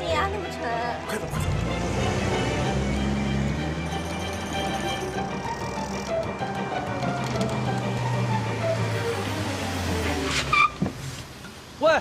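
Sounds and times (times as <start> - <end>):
car braking to a stop: 1.4 - 11.4
tyre squeal: 3.9 - 6.2, 10.2 - 10.8.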